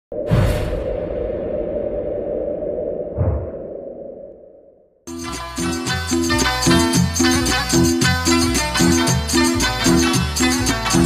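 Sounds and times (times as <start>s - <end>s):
whoosh: 0.1s - 4.9s
deep hit: 3.1s - 4.1s.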